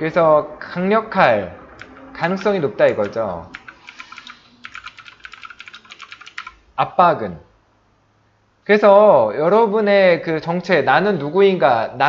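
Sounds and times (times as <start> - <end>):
computer keyboard typing: 1.8 - 6.6.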